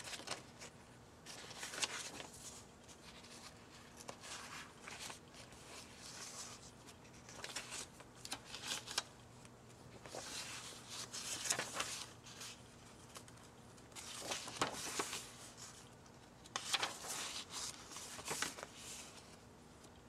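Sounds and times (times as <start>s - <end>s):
paper pages turning: 0.0s - 20.0s.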